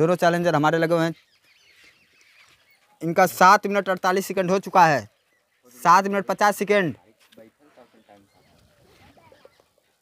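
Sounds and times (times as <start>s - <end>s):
man speaking: 3.0s - 8.6s
faint bird calls: 7.0s - 10.0s.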